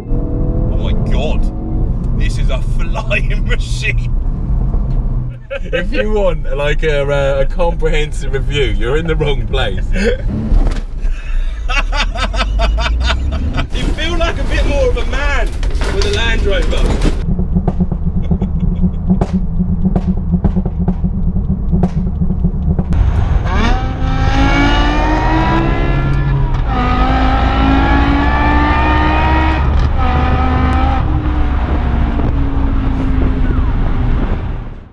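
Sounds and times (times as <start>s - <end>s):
car engine accelerating hard: 0.0s - 11.0s, 11.9s - 34.9s
low vehicle rumble: 0.0s - 34.9s.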